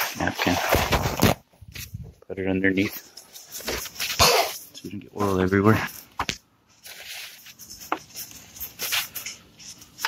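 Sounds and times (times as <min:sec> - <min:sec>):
shop towel rustling and crinkling: 0:04.8 - 0:10.0.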